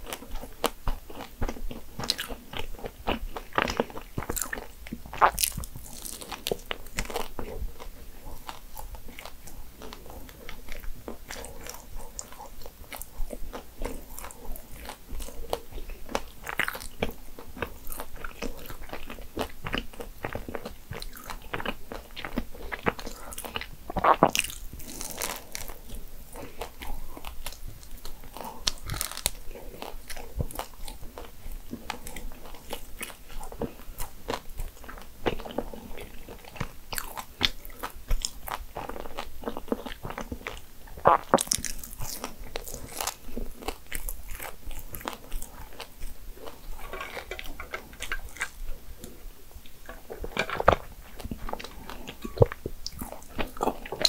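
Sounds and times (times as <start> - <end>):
person chewing: 0.0 - 54.0.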